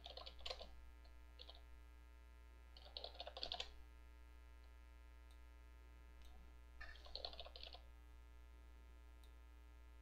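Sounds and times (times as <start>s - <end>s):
faint keyboard typing: 0.0s - 1.7s, 2.7s - 3.8s, 6.2s - 7.9s.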